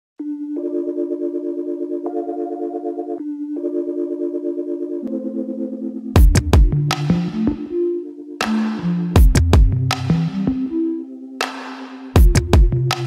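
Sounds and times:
synthesizer chords with fast pulse: 0.2 - 13.0.

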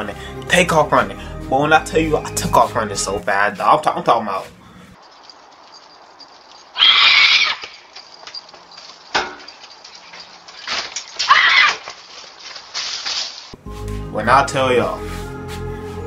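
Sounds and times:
woman screaming: 6.8 - 7.8, 11.2 - 11.9.

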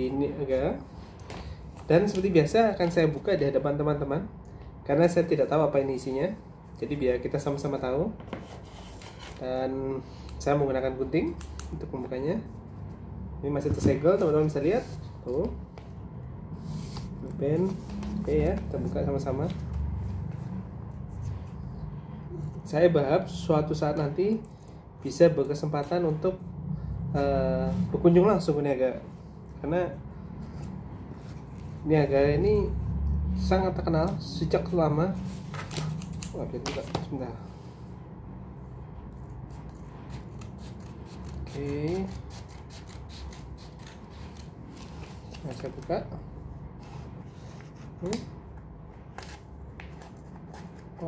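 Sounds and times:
steady low hum: 0.0 - 51.0
scissors cutting wrapping: 39.5 - 45.8.

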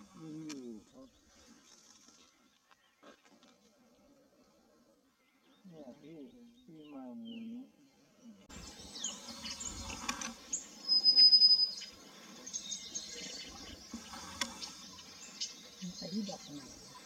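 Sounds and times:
birds chirping and trilling: 0.0 - 17.0
high bird whistle: 8.6 - 13.0.

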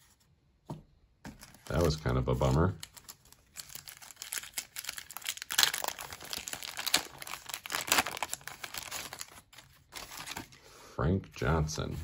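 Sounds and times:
wrapper tearing and crinkling: 1.6 - 10.5.

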